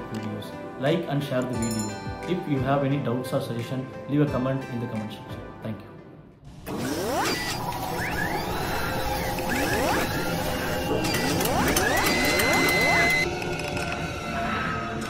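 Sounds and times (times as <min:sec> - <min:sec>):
music: 0:00.0 - 0:15.0
steady high tone: 0:07.6 - 0:14.1
mechanical clicking and ratcheting: 0:08.0 - 0:14.0.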